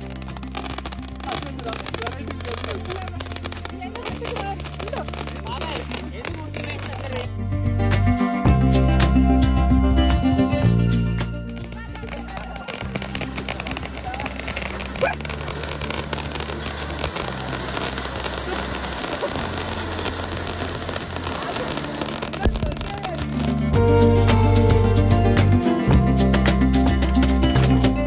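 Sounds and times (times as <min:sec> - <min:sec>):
fireworks crackling hiss: 0:00.0 - 0:07.3, 0:11.4 - 0:24.5
background music with bass line: 0:00.0 - 0:28.0.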